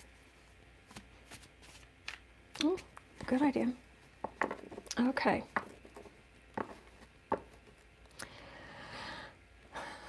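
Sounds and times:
cards being shuffled: 0.8s - 3.4s.

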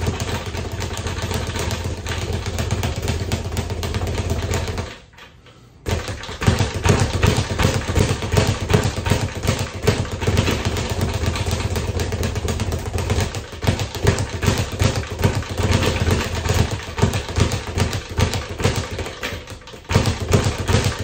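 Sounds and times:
speed bag thudding: 0.0s - 5.1s, 5.8s - 21.0s.

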